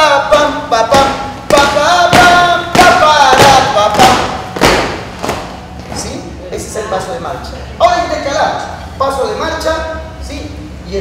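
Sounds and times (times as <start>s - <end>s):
feet stamping in time: 0.9s - 5.6s.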